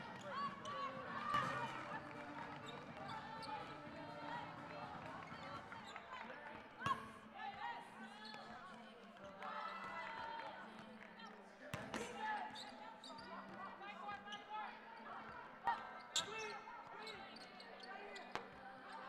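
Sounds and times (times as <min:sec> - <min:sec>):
players' voices echoing: 0:00.0 - 0:08.0.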